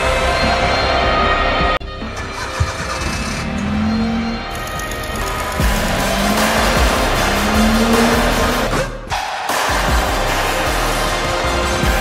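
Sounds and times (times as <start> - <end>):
background music: 0.0 - 12.0
car engine revving: 1.9 - 12.0.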